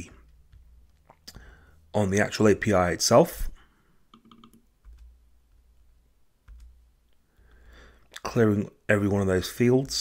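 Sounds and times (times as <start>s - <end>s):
mouse and keyboard clicking: 4.1s - 5.2s.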